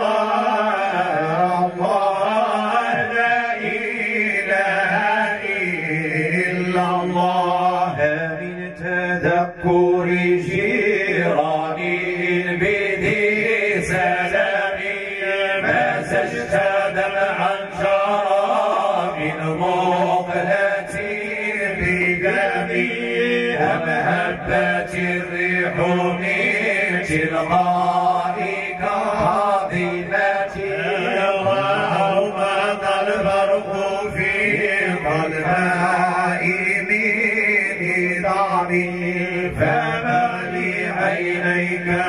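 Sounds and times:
men chanting devotional praise: 0.0 - 42.0.

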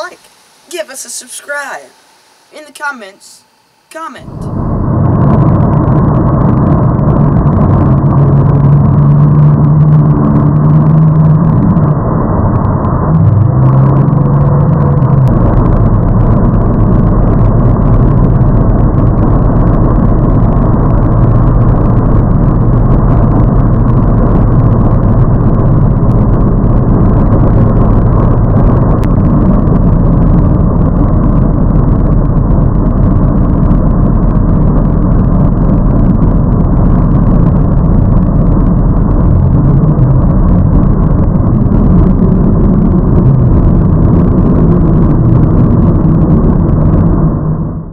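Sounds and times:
boat engine running: 4.2 - 47.9.

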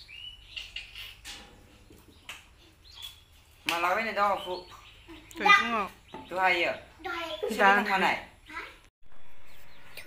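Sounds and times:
small bird chirping: 0.0 - 10.0.

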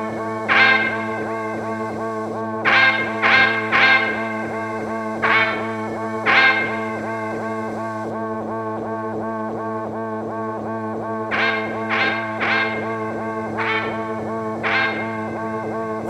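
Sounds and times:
distorted electric guitar: 0.0 - 8.1, 11.2 - 16.0.

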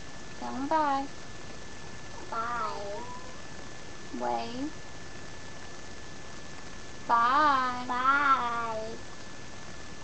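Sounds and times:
steady hiss with high whine: 0.0 - 10.0.

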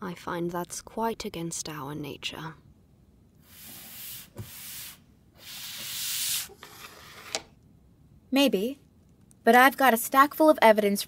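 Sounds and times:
paper pages rustling and sliding: 3.6 - 7.5.

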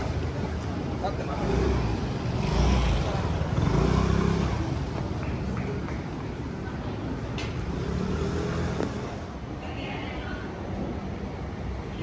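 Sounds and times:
scooter engine passing: 0.0 - 9.5
passers-by talking: 0.0 - 12.0.

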